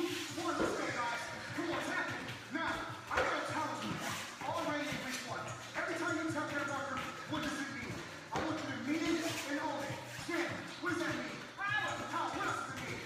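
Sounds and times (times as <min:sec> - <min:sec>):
workout music: 0:00.0 - 0:13.0.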